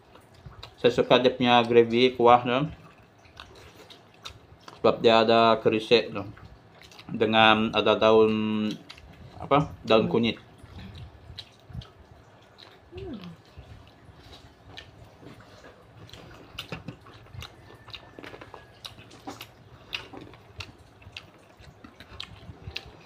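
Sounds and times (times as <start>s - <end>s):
person chewing food: 0.0s - 1.0s, 2.7s - 5.6s, 6.2s - 23.0s.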